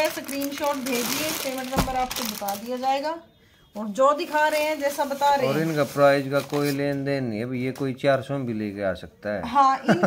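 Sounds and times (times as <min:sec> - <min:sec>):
woman talking: 0:00.0 - 0:05.7, 0:09.5 - 0:10.0
cloth rustling: 0:04.2 - 0:07.1.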